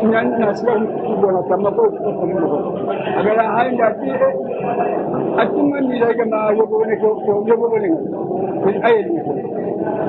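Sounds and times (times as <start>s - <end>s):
man speaking in a lecture: 0.0s - 9.7s.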